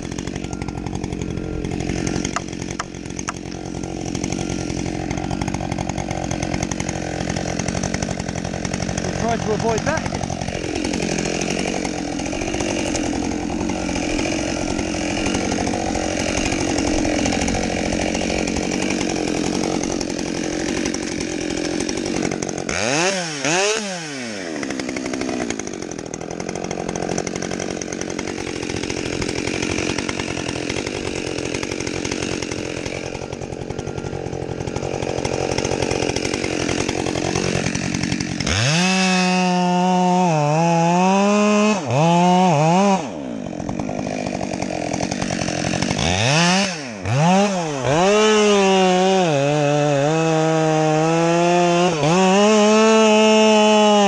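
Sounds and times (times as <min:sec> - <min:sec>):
chainsaw revving: 0:00.0 - 0:54.0.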